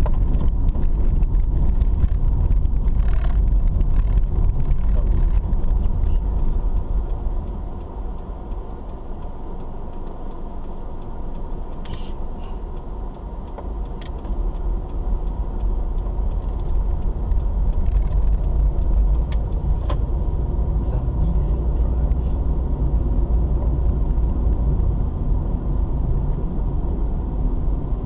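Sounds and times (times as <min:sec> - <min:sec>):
engine and tyre rumble: 0:00.0 - 0:28.0.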